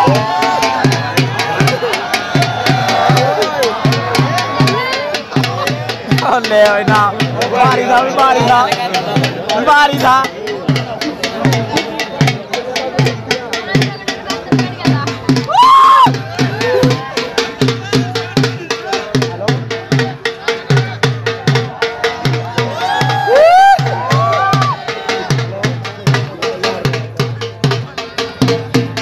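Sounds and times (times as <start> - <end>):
dhol drum beating: 0.0 - 29.0.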